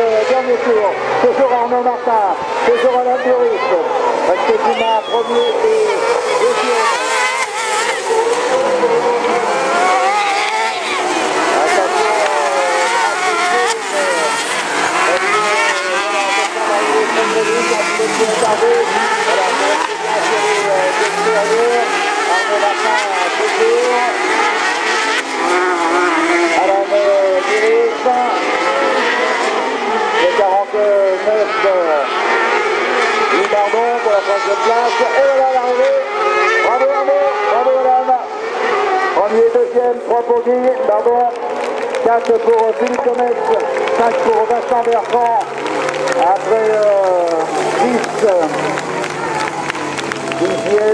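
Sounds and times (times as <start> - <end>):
racing buggy engines revving: 0.0 - 50.9.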